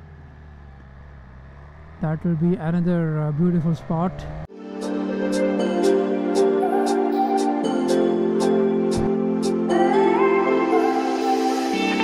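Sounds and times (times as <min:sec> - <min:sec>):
motorcycle engine running: 0:00.0 - 0:04.5.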